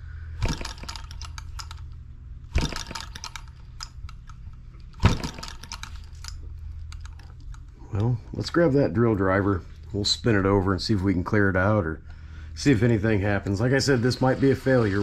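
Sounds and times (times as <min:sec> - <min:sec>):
model engine flipped by hand: 0:00.4 - 0:01.8, 0:02.5 - 0:06.4.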